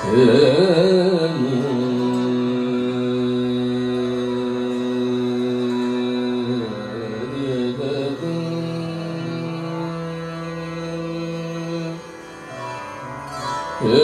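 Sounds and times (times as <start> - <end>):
harmonium: 0.0 - 14.0
tanpura drone: 0.0 - 14.0.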